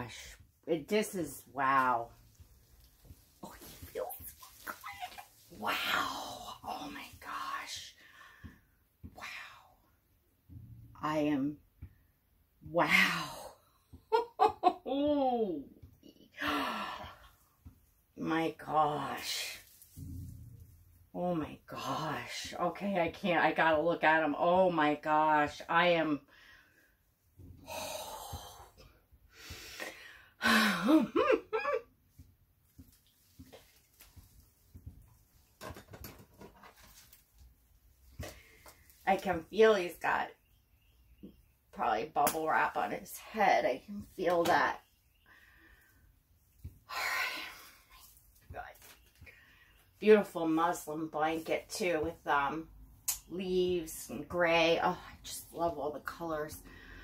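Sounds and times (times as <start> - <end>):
woman breathing: 8.0 - 8.8, 26.3 - 30.9, 45.2 - 46.2.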